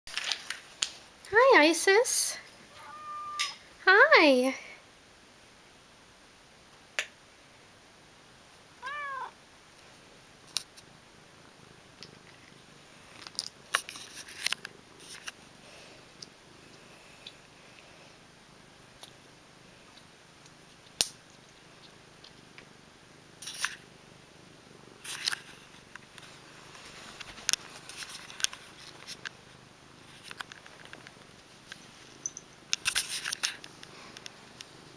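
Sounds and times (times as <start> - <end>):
cat meowing: 2.7 - 3.6, 8.8 - 9.4
cat purring: 8.8 - 34.9
light clicks and rustles: 12.0 - 15.4, 25.0 - 29.4, 30.0 - 34.8.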